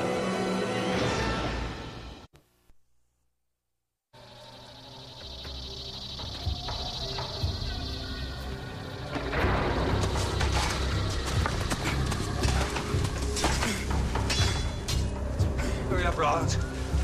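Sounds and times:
drama soundtrack music: 4.2 - 17.0.

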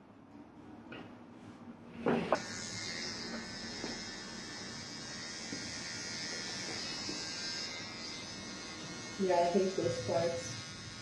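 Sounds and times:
hair trimmer buzzing: 2.3 - 11.0.

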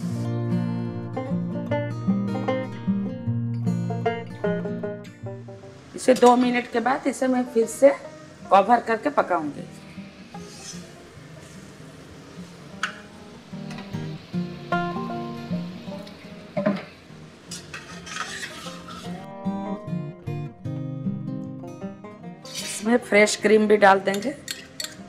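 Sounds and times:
background music: 0.0 - 25.0
vegetables sizzling in a pan: 5.5 - 19.4, 22.4 - 25.0
water sizzling in hot pan: 5.7 - 19.3
metal spatula scraping a pan: 10.3 - 11.7, 17.5 - 19.3, 22.4 - 23.0.

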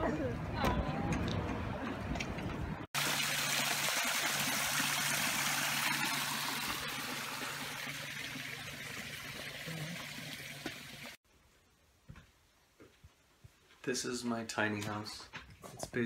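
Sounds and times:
waterfall trickling and splashing: 3.0 - 11.2.

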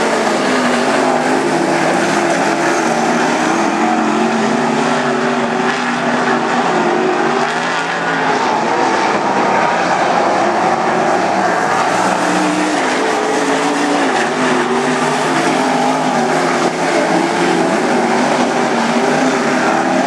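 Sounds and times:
race car engines at high revs: 0.0 - 20.0.

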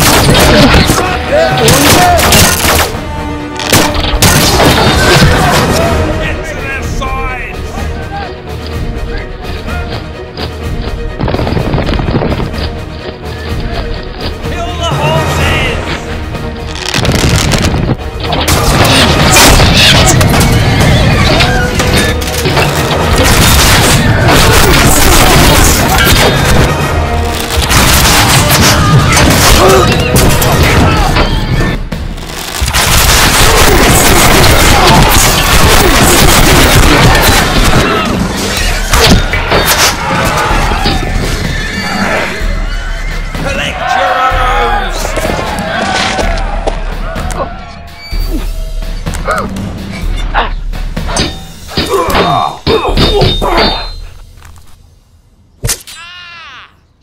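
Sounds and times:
background music: 0.0 - 56.2
battle hits and clashes: 17.0 - 31.8, 32.5 - 41.4
men shouting: 33.2 - 41.2, 43.4 - 47.8.

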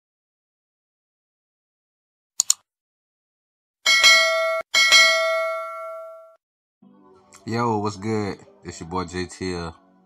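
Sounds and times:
notification bell ringing: 3.9 - 6.4.

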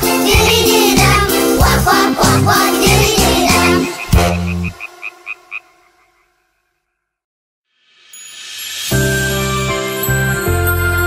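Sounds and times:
children's song: 0.0 - 5.2
cartoon frog croaks: 3.6 - 6.3.

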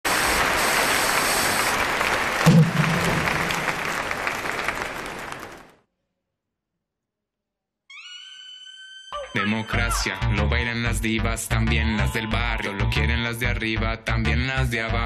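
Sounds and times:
audience applause: 0.1 - 5.8
low loud hit: 2.5 - 3.8.

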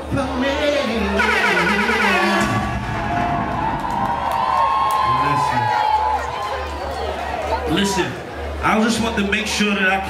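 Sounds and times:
crowd cheering and screaming: 1.1 - 8.2.

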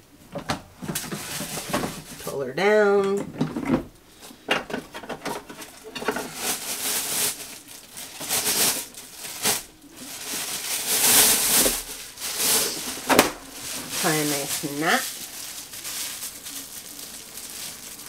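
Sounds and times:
plastic bag rustling and crinkling: 0.4 - 2.4, 3.4 - 18.0
plastic pail clicks: 12.5 - 14.0.

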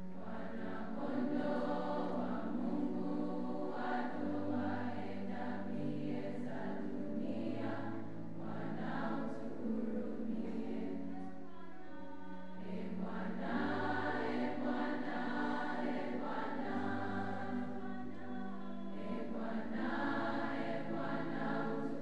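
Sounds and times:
choir singing held chords: 0.0 - 22.0.

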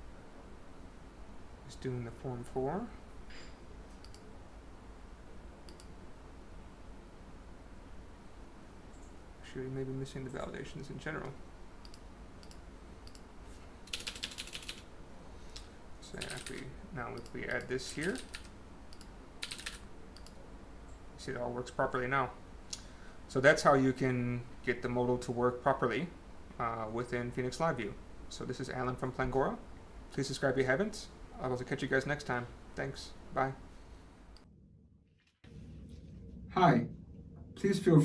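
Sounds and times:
low room hum: 0.0 - 38.0
computer mouse clicks: 3.9 - 4.3, 5.6 - 6.0, 11.8 - 13.3, 17.2 - 21.0
computer keyboard keystrokes: 13.9 - 14.8, 15.6 - 16.6, 17.2 - 20.4.

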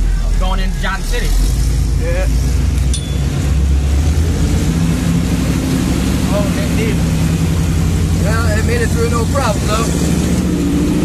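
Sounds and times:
engine droning: 0.0 - 11.0.

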